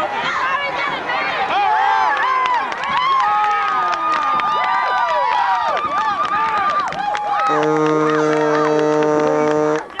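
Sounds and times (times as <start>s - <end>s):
crowd voices: 0.0s - 10.0s
horn long low tone: 7.4s - 10.0s.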